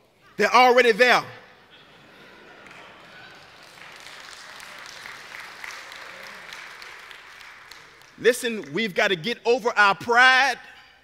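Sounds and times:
light applause: 2.2 - 9.0.

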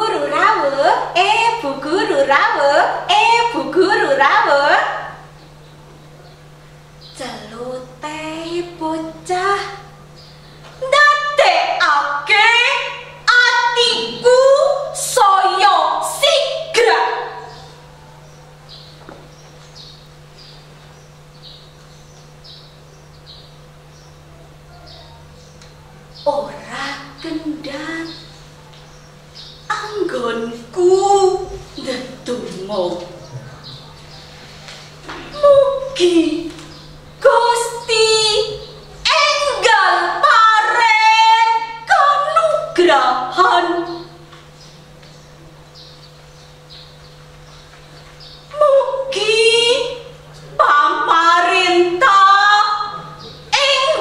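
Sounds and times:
low electrical hum: 0.0 - 54.0
small birds chirping: 4.7 - 11.5, 15.8 - 41.1, 41.8 - 50.6, 51.4 - 54.0
small bird chirping: 17.4 - 26.5, 27.2 - 30.1, 32.9 - 34.4, 43.8 - 48.5.

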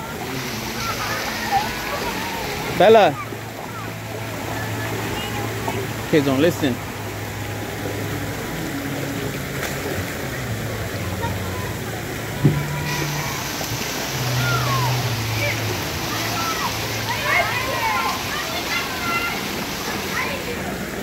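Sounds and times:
children's voices: 0.0 - 6.1, 9.9 - 21.0
water rushing and splashing: 0.0 - 21.0.

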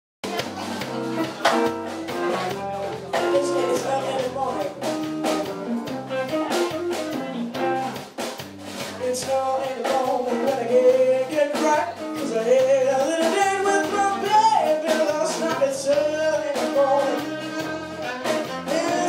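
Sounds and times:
drum kit: 0.2 - 19.0
electric guitar: 0.2 - 19.0.

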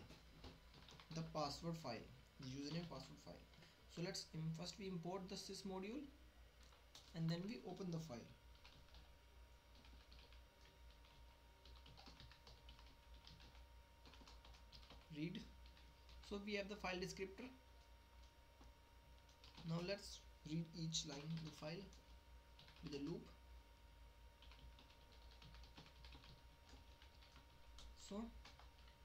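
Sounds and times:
computer keyboard typing: 0.0 - 1.6, 2.4 - 3.2, 6.6 - 7.9, 8.5 - 17.2, 19.2 - 20.1, 20.9 - 23.3, 24.4 - 29.0.

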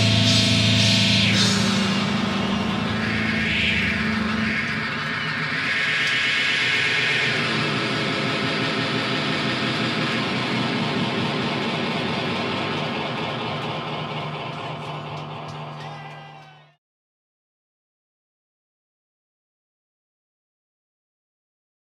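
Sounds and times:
amplifier drone: 0.0 - 16.3
crowd noise: 0.0 - 16.8.

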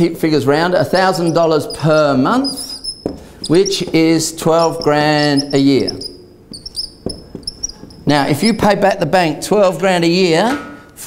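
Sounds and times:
whiteboard marker squeaking: 0.7 - 8.7
faint taps: 3.0 - 4.0, 6.0 - 8.0.

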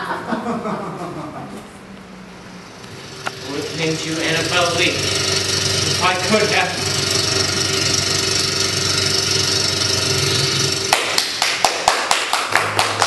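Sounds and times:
loud steady whirring: 2.0 - 13.0
small audience clapping: 10.9 - 13.0.

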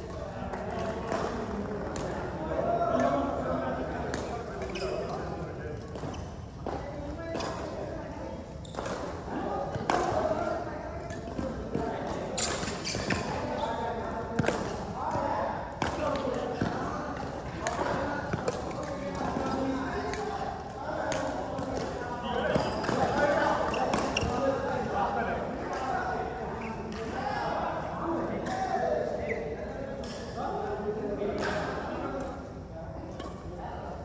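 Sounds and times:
rackets hitting shuttlecock: 0.1 - 2.2, 8.7 - 13.5, 14.4 - 24.4.

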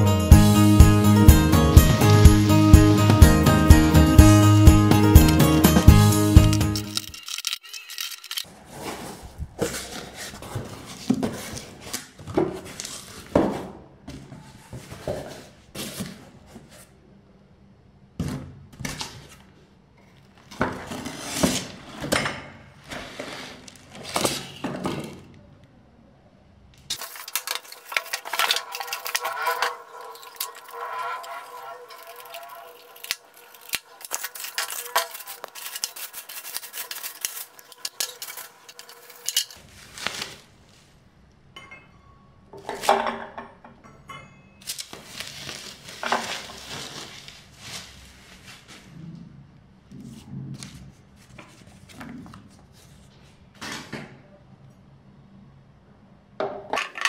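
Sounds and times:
music with a beat: 0.0 - 6.9
plastic wrap rustling: 26.9 - 41.1, 44.6 - 49.0
cardboard box being opened: 31.8 - 40.5.

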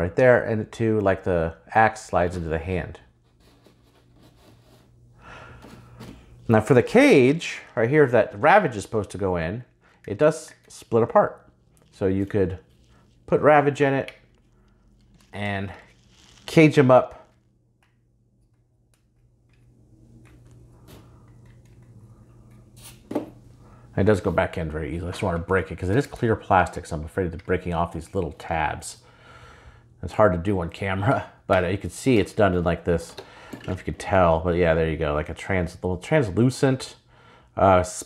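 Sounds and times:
low steady hum: 0.0 - 38.0.

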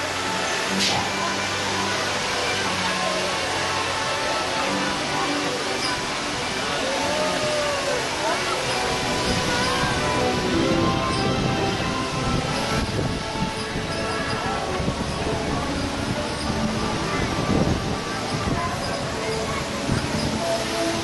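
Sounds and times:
crowd chatter: 0.0 - 21.0
ride rumble: 4.6 - 21.0
wind noise: 8.8 - 21.0
fairground band organ music: 8.9 - 17.6.

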